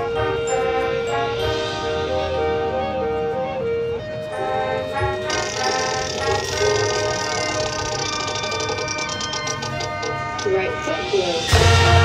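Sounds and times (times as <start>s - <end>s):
marching band brass chords: 0.0s - 8.0s, 9.4s - 12.0s.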